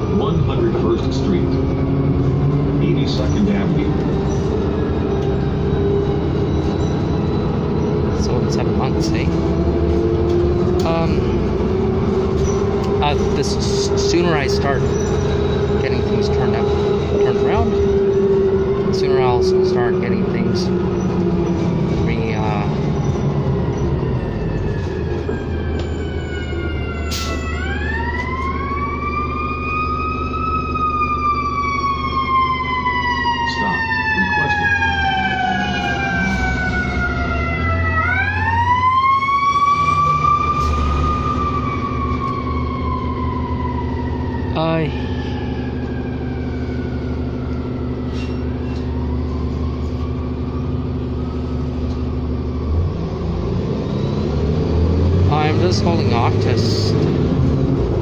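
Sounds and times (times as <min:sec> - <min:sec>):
bus diesel engine hum: 0:00.0 - 0:58.0
emergency siren wailing: 0:00.0 - 0:58.0.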